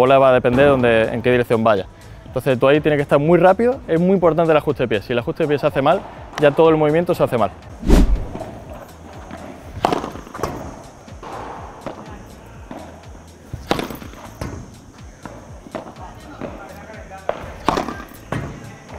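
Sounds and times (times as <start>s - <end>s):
padel racket hitting ball: 17.7s - 18.0s.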